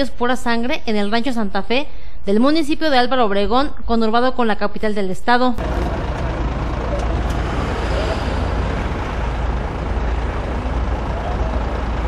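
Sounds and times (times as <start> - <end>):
faint voices: 5.6 - 12.0
truck engine rumbling: 5.6 - 12.0.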